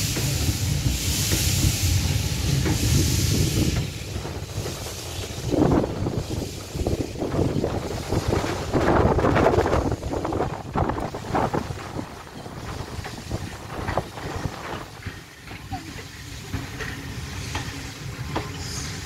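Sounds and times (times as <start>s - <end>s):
train wheels clattering on rails: 0.0s - 19.0s
wind on microphone: 1.6s - 15.2s.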